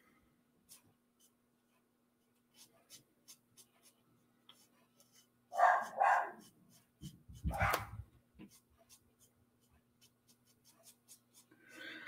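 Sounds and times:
marker strokes on card: 0:00.6 - 0:11.8
dog barking: 0:05.5 - 0:06.5, 0:07.5 - 0:08.0.

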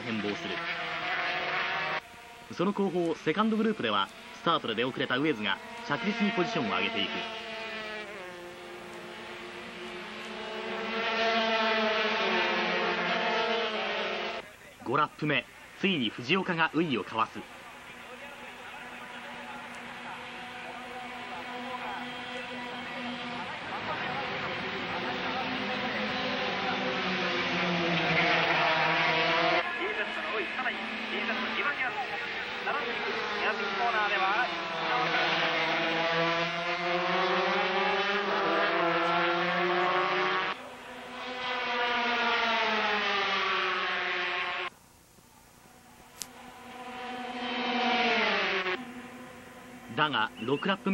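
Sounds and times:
racing motorcycles revving high: 0:00.0 - 0:14.4, 0:17.4 - 0:44.7, 0:46.2 - 0:50.9.

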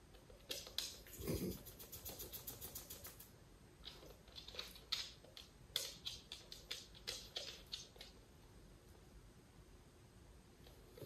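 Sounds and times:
dog claws clicking on hard floor: 0:00.1 - 0:08.2.

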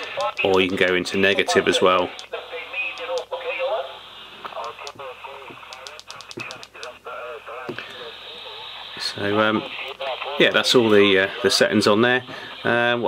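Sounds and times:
radio hiss: 0:00.0 - 0:13.0
radio voice over loudspeaker: 0:00.0 - 0:13.0
radio key clicks: 0:02.9 - 0:03.3, 0:04.5 - 0:07.0.

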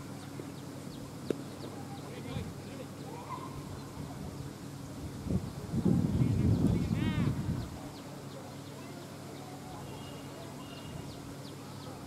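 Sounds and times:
faint distant voices: 0:00.0 - 0:12.0
wind rumbling on microphone: 0:03.5 - 0:08.0.

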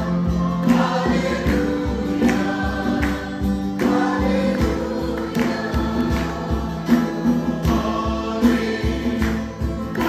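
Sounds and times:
choir singing worship song: 0:00.0 - 0:10.0
guitar: 0:00.0 - 0:10.0
keyboard: 0:00.0 - 0:10.0
steady drum beat: 0:00.0 - 0:10.0.

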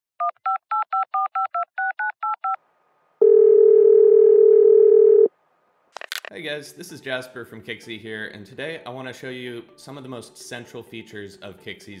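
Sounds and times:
telephone ringback tone: 0:03.2 - 0:05.3.

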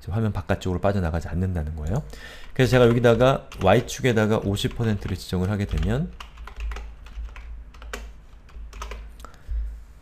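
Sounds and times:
computer keyboard keystrokes: 0:04.7 - 0:09.1.

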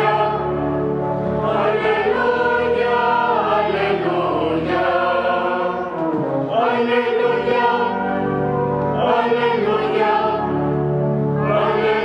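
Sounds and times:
choir singing a chant: 0:00.0 - 0:08.3, 0:08.9 - 0:10.8, 0:11.4 - 0:12.0.

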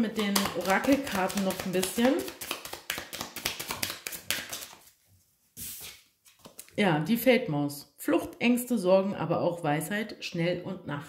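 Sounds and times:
cards being shuffled: 0:00.1 - 0:05.0, 0:05.6 - 0:06.7.

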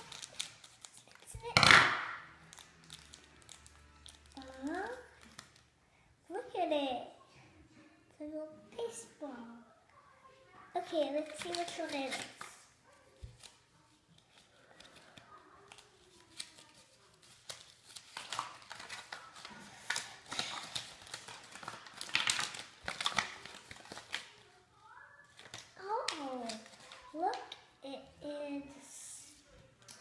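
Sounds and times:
plastic packets crinkling and tearing: 0:00.0 - 0:05.7, 0:11.2 - 0:24.5, 0:25.2 - 0:27.7.

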